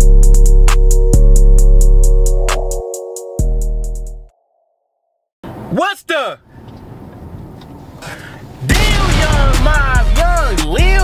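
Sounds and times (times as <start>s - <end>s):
background music: 0.0s - 4.3s, 8.7s - 11.0s
car interior hum: 6.4s - 8.8s.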